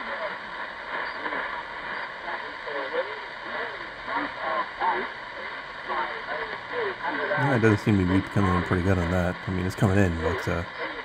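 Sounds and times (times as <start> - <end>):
static hiss: 0.0 - 11.0
distant voice through radio speaker: 7.2 - 10.7.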